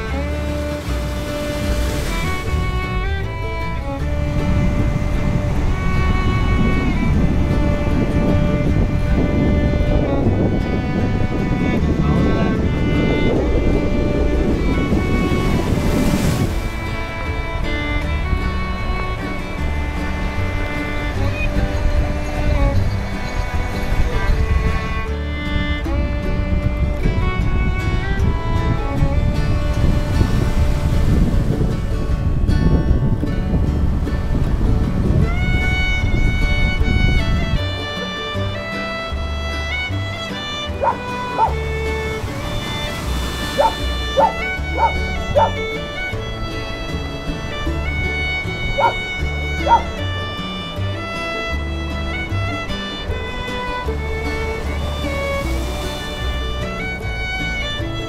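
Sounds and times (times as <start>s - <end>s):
music with sustained notes: 0.0s - 58.0s
ocean surf washing on beach: 0.0s - 58.0s
wind buffeting microphone: 0.0s - 58.0s
dog yips: 40.8s - 41.5s, 43.6s - 45.6s, 48.8s - 49.0s, 49.6s - 49.9s.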